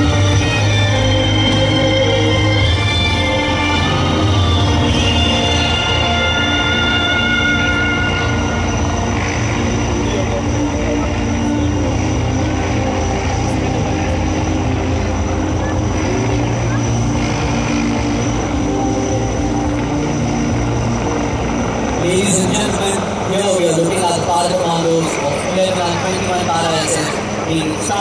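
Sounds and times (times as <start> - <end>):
helicopter hovering: 0.0 - 28.0.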